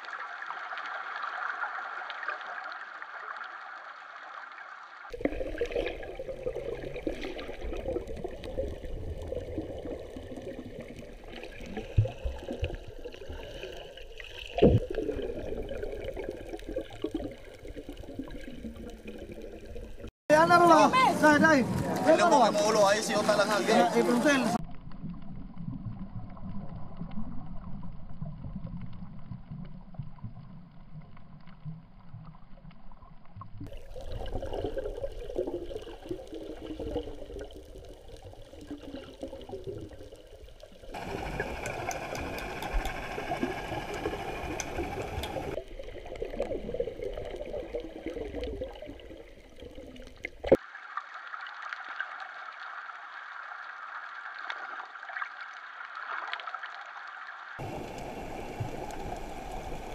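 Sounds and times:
underwater gurgling rush: 0.0s - 20.1s, 23.0s - 59.9s.

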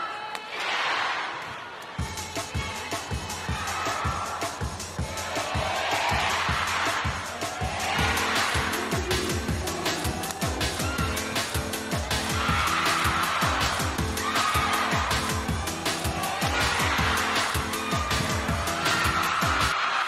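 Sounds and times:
background music with steady beat: 1.8s - 19.8s.

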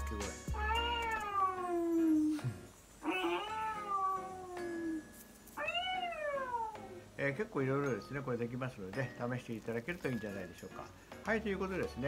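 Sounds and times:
cat meows through tv speaker: 3.0s - 5.0s, 5.6s - 6.8s.

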